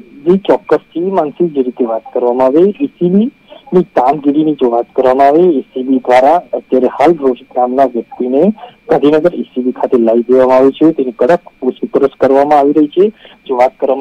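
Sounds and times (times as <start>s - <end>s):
faint steady high tone: 0.0s - 14.0s
voice narrating over phone line: 0.0s - 14.0s.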